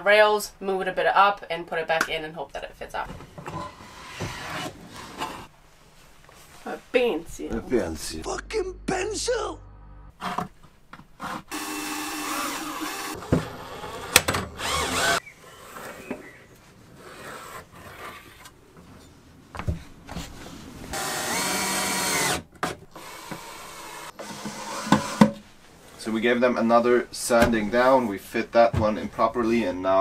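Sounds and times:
electric drill boring into wood: 0:11.5 - 0:15.2, 0:21.0 - 0:25.3.

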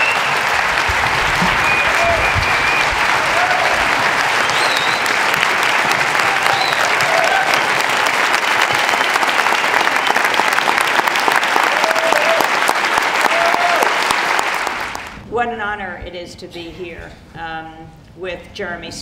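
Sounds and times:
large audience clapping: 0:00.0 - 0:15.2.

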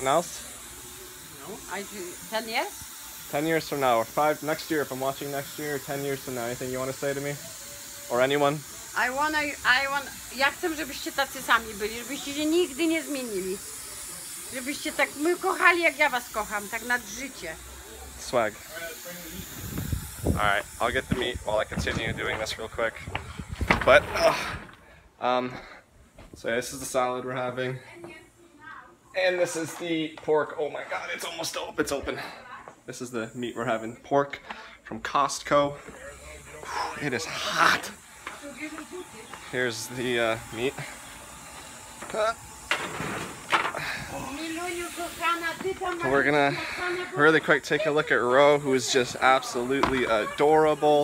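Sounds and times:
water spraying from hose nozzle: 0:00.0 - 0:22.5, 0:36.1 - 0:51.0
steady high hiss: 0:00.0 - 0:51.0.

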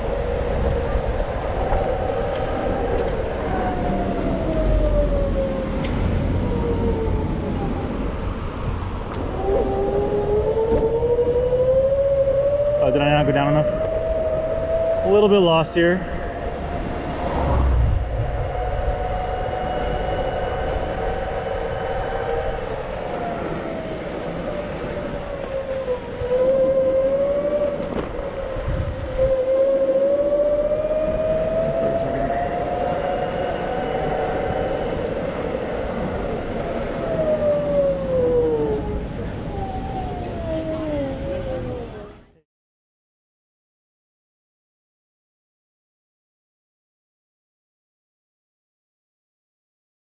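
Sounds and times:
electric scooter motor whining: 0:00.0 - 0:42.2
wind and road noise: 0:00.0 - 0:42.4.

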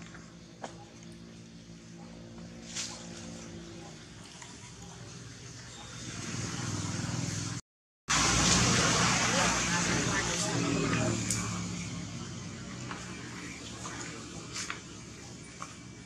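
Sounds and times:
motor vehicle passing: 0:00.0 - 0:16.0.

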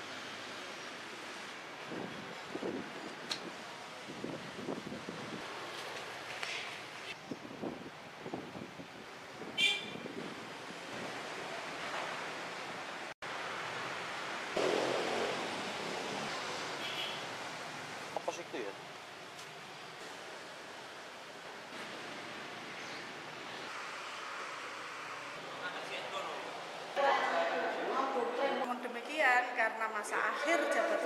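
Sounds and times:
wind on microphone: 0:01.8 - 0:05.6, 0:07.1 - 0:11.3.

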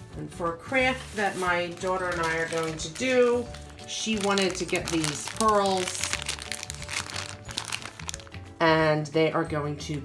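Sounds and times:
soft background music: 0:00.0 - 0:10.0
plastic bag crinkling: 0:00.9 - 0:08.5.

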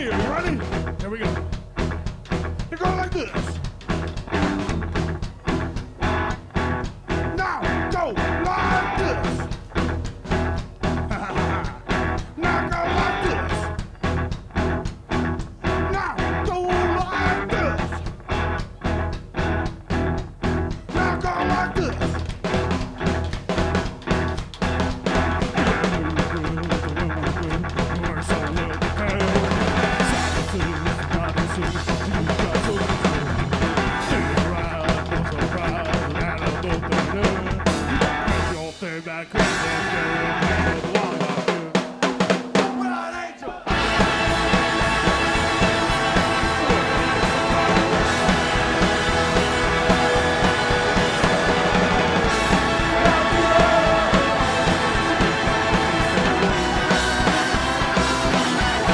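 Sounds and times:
live rock band playing: 0:00.0 - 0:42.9, 0:43.7 - 0:58.9.

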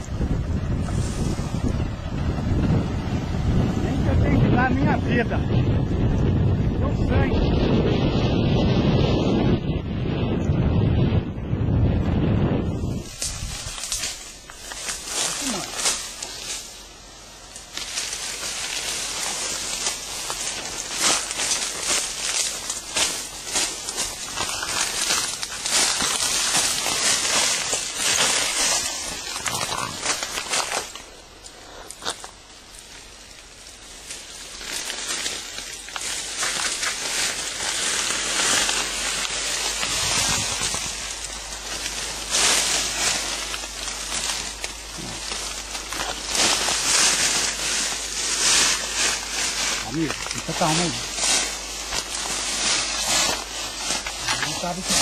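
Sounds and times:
brush rustling and snapping: 0:12.8 - 0:55.0.

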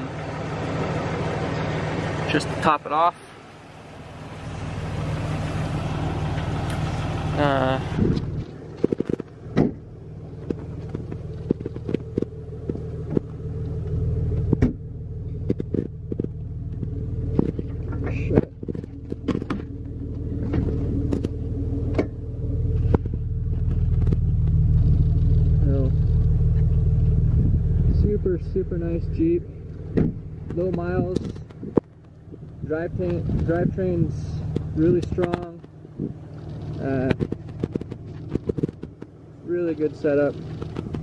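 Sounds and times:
car engine idling: 0:00.0 - 0:41.0.

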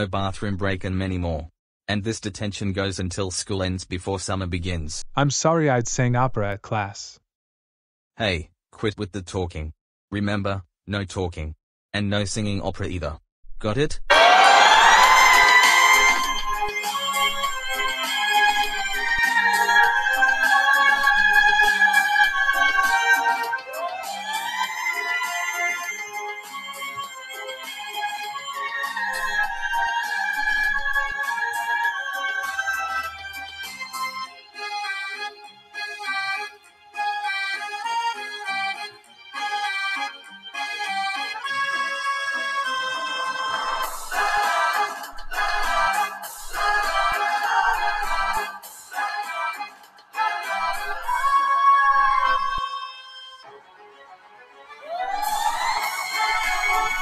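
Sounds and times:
electronic keyboard organ music: 0:14.1 - 0:57.0.

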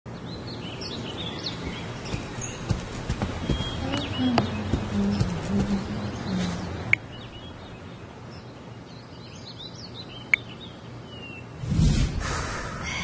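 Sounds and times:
birds chirping: 0:00.1 - 0:13.0.

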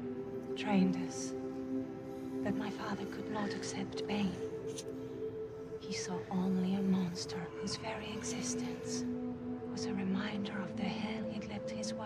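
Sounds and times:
woman speaking softly: 0:00.6 - 0:01.4, 0:02.4 - 0:04.8, 0:05.8 - 0:09.1, 0:09.7 - 0:12.0.

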